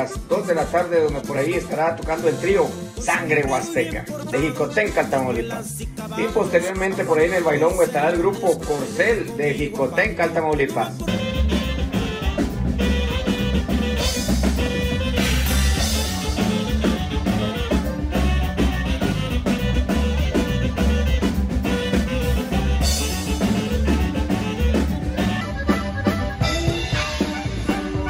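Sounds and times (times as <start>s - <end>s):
accordion: 0.0s - 28.0s
bass: 0.0s - 28.0s
drum kit: 0.0s - 28.0s
saxophone: 10.8s - 28.0s.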